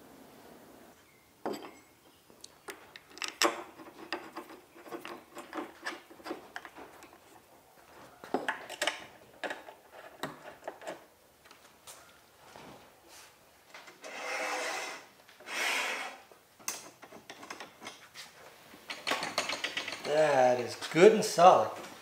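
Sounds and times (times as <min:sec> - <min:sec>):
metal parts knocking and clinking: 0:02.7 - 0:07.2, 0:08.3 - 0:11.0, 0:16.6 - 0:18.0, 0:18.9 - 0:20.4.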